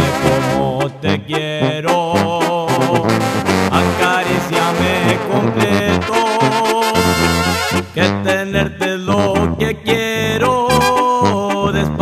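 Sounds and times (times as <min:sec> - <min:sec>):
brass band music: 0:00.0 - 0:09.7, 0:10.4 - 0:12.0.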